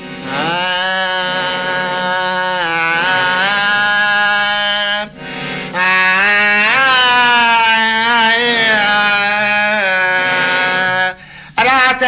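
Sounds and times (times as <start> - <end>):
man singing a long held note: 0.0 - 12.0.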